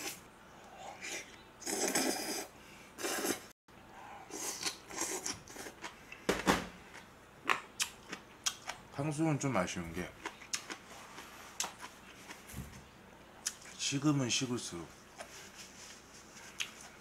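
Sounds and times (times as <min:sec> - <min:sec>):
noodles slurped: 0:01.0 - 0:03.5
wet chewing with mouth clicks: 0:07.0 - 0:08.8, 0:10.2 - 0:12.5, 0:16.5 - 0:16.9.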